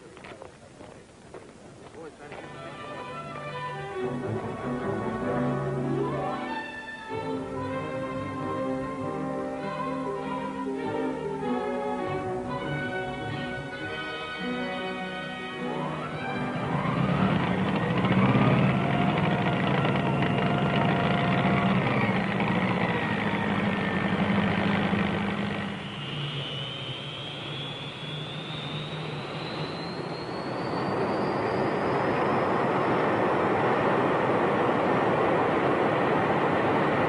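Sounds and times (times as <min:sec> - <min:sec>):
steady rushing noise: 0:00.0 - 0:37.0
jet engine turbine whine: 0:02.0 - 0:37.0.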